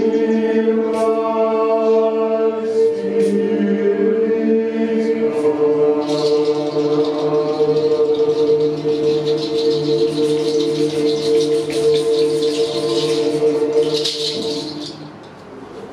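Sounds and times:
chanted drone of voices: 0.0 - 15.4.

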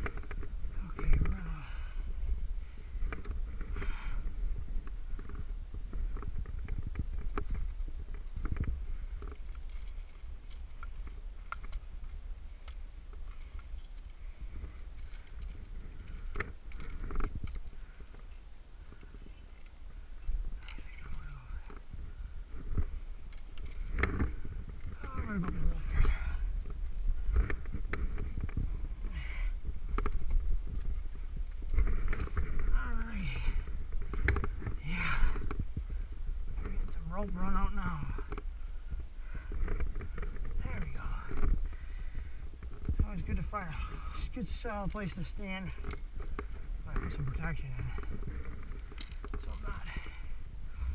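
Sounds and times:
climber breathing: 0.0 - 50.9
low rumble on microphone: 0.0 - 50.9
climbing gear clinking: 3.0 - 50.9.

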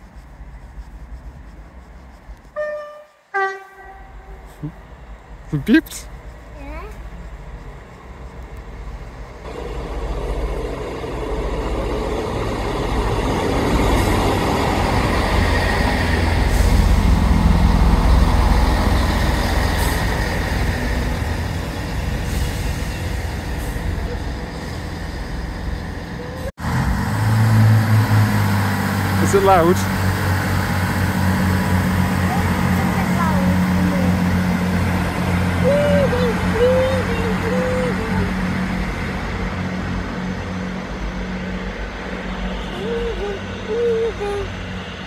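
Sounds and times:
diesel train engines: 0.0 - 45.0
train wheels on rails: 5.6 - 45.0.

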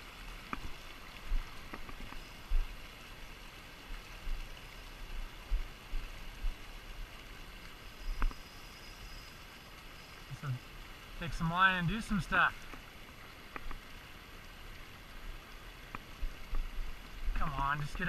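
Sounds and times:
faint clicks: 0.4 - 0.7, 1.6 - 2.3, 13.5 - 13.8, 15.8 - 16.7.

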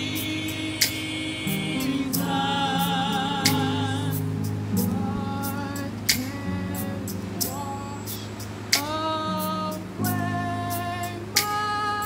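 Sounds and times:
sustained keyboard chords: 0.0 - 12.0
women singing gospel: 0.0 - 12.0.

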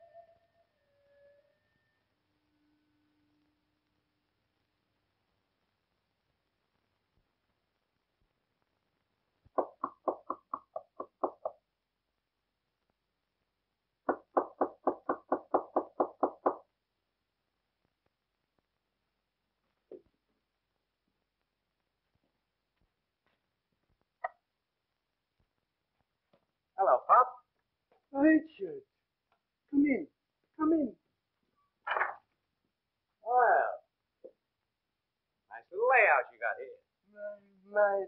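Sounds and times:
quiet phonograph record music: 0.0 - 38.0
knocking on wooden door: 14.1 - 16.6.

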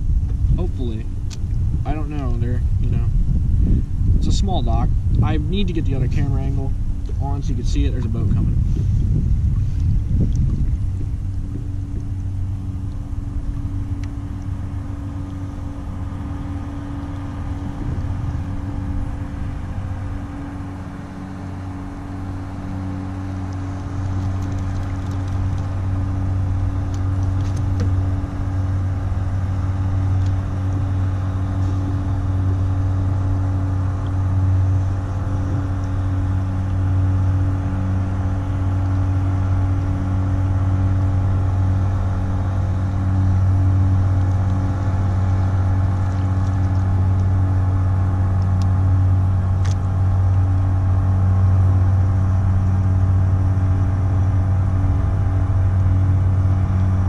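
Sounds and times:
motorboat engine droning: 0.0 - 57.0.

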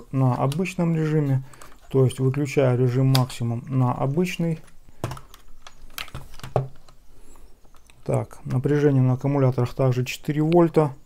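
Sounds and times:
sharp plastic clicks and knocks: 4.6 - 7.0.

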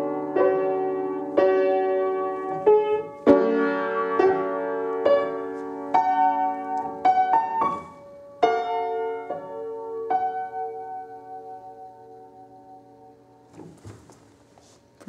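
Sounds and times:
out of tune upright piano: 0.0 - 15.0.

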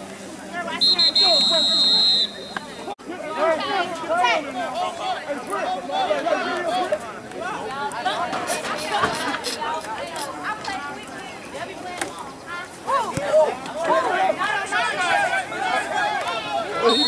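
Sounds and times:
crowd talking and calling out: 0.0 - 17.0
referee's whistle blast: 0.8 - 2.9.

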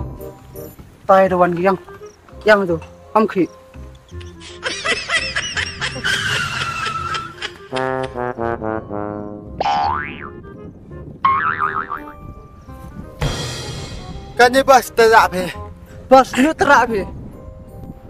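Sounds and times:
background music: 0.0 - 18.0
cartoon boing: 9.6 - 10.4, 11.2 - 12.1.

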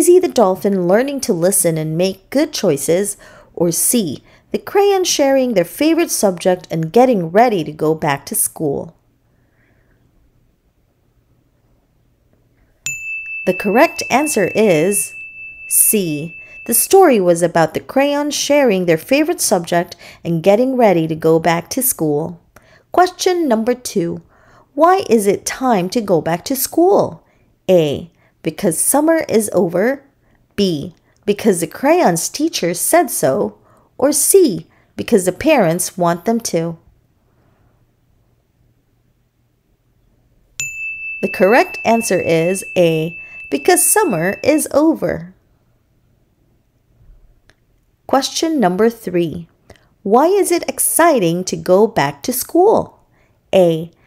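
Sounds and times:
bright bell ding: 12.9 - 17.2, 40.6 - 44.8.

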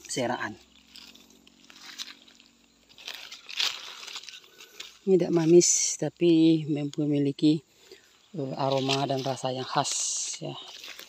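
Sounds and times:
rustling in dry leaf litter: 0.0 - 11.0.

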